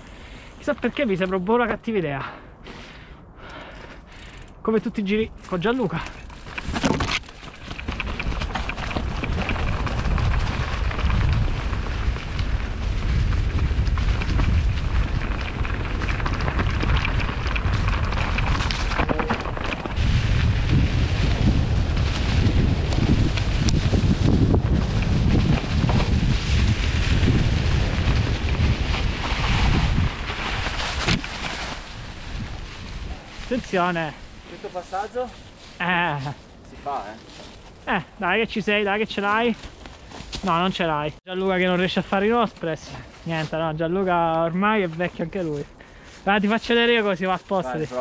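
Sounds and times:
wind buffeting microphone: 0:02.9 - 0:39.6
tyres crunching through dry leaves: 0:05.3 - 0:41.0, 0:41.6 - 0:48.0
bike knocking over roots: 0:05.5 - 0:35.9.

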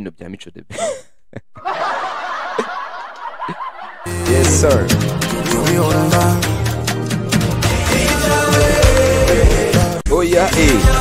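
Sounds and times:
person laughing: 0:00.7 - 0:04.6.

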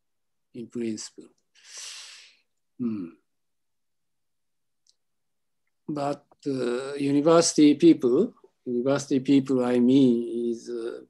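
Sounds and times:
man humming mm: 0:02.8 - 0:03.2.

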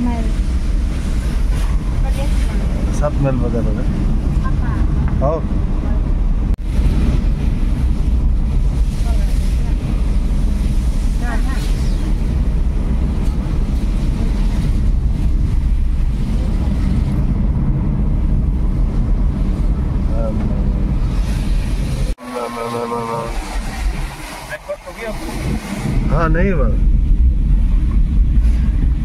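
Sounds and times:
car engine and tyres rumbling: 0:00.0 - 0:29.0
hiss of spray and wind: 0:06.6 - 0:17.2, 0:21.0 - 0:26.6.

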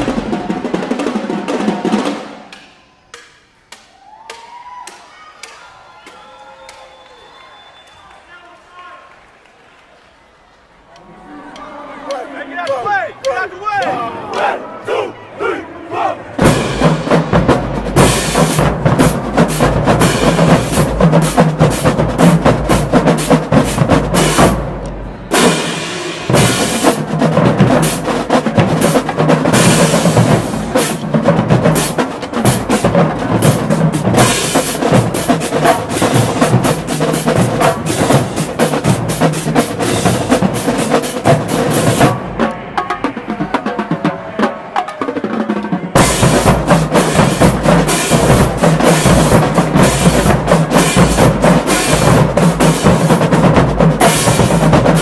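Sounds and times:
snare drums playing: 0:00.0 - 0:04.5, 0:12.1 - 0:14.5, 0:16.4 - 0:55.0.

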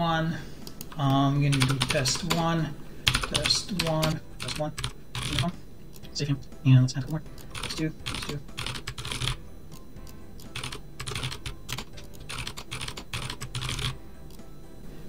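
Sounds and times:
typing on computer keyboard: 0:01.5 - 0:02.4, 0:03.1 - 0:05.5, 0:07.4 - 0:09.4, 0:10.4 - 0:14.0.

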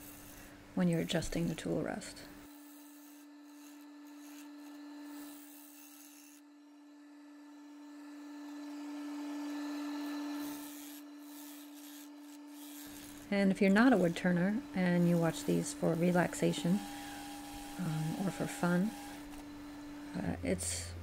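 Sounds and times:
gouge scraping spinning wood: 0:00.0 - 0:06.4, 0:08.4 - 0:20.8
wood lathe humming: 0:00.0 - 0:21.0.

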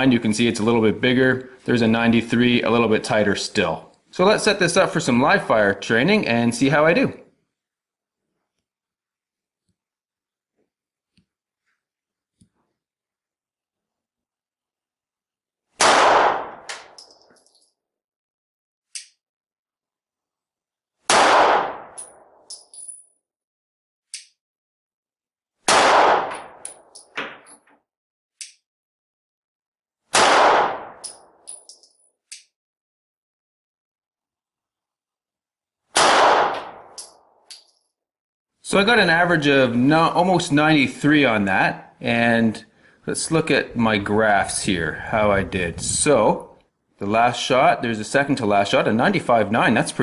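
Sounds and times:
pistol shots with echo: 0:15.8 - 0:17.0, 0:21.1 - 0:22.2, 0:25.7 - 0:26.9, 0:30.1 - 0:31.3, 0:36.0 - 0:37.0
light metallic clinks: 0:31.0 - 0:32.1.

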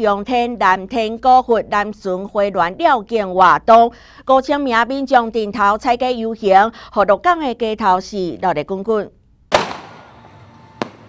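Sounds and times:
firework bang: 0:09.5 - 0:11.0
sharp firework crack: 0:09.5 - 0:11.0.

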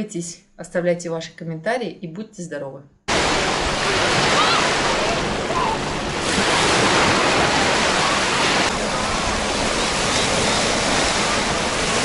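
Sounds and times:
small waves breaking on beach: 0:03.1 - 0:12.0.

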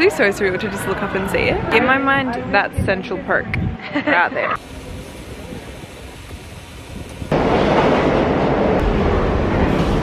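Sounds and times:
loud steady rumbling: 0:01.2 - 0:10.0.

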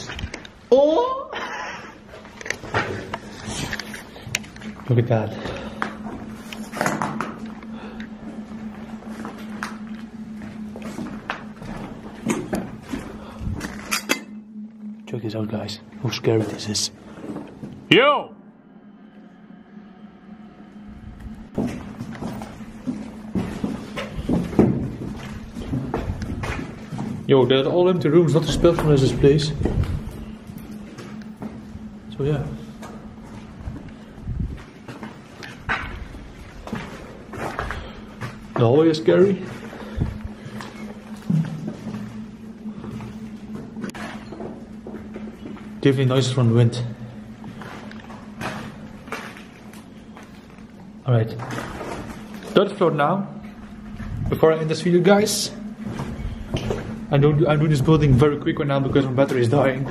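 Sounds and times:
steady low hum: 0:00.0 - 0:59.9
footsteps on dusty floor: 0:02.1 - 0:13.8, 0:21.1 - 0:52.6, 0:55.5 - 0:59.9
footsteps on rubble: 0:21.5 - 0:27.3, 0:33.2 - 0:42.2.

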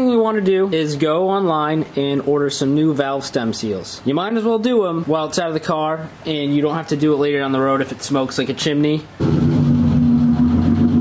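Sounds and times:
car engine at high revs: 0:09.2 - 0:11.0.

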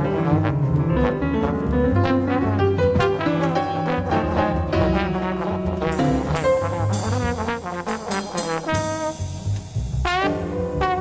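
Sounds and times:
bass: 0:00.0 - 0:11.0
brass horn solo: 0:00.0 - 0:11.0
drums: 0:00.0 - 0:11.0.

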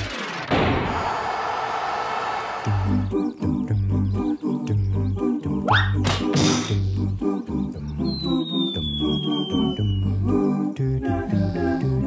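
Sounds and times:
bouncy rhythmic music: 0:02.7 - 0:12.0
falling whistle glide: 0:08.1 - 0:10.2.

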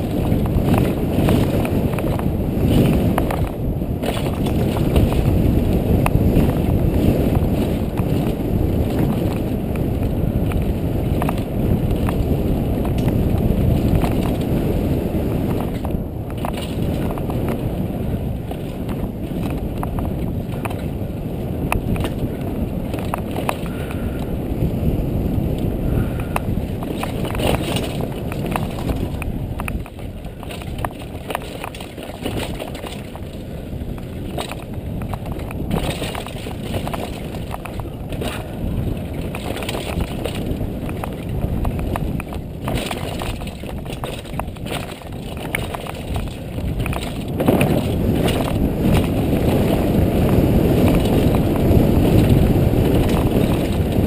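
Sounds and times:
bike clicks and rattles: 0:00.0 - 0:54.0
bike tyre noise on dirt: 0:00.0 - 0:54.0
wind rush on microphone: 0:00.0 - 0:54.0.

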